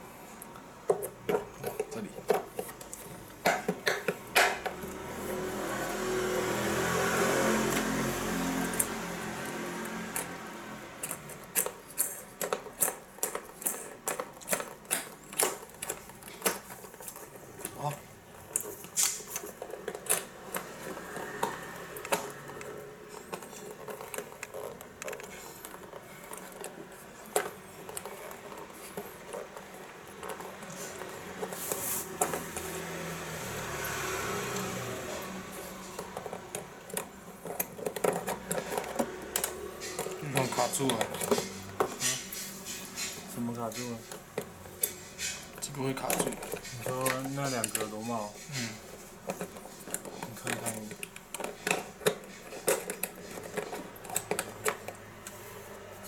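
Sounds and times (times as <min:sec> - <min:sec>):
plastic parts clattering: 0:10.9 - 0:32.8, 0:35.1 - 0:56.0.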